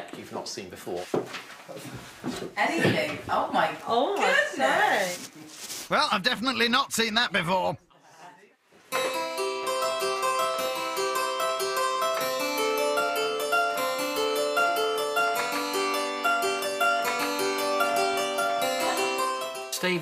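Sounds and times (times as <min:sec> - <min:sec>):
small harpsichord playing: 0:08.9 - 0:20.0.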